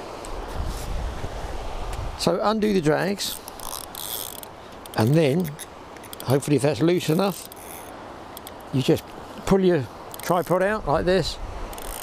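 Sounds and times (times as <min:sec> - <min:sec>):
faint even hiss: 0:00.0 - 0:12.0
wind buffeting microphone: 0:00.4 - 0:03.0.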